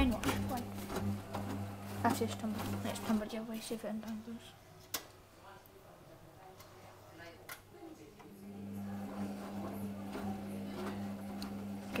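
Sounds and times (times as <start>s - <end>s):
wet laundry tumbling in drum: 0.0s - 3.3s
washing machine motor hum: 0.0s - 3.4s, 8.3s - 12.0s.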